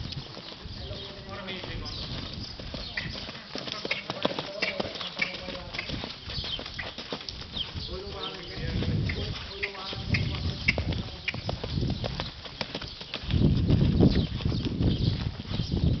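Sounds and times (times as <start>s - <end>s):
horse hoofbeats on sand: 0.0s - 16.0s.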